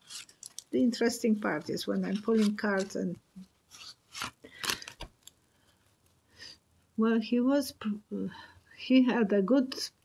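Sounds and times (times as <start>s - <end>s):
cards rustling: 0.0s - 0.8s, 1.4s - 5.4s.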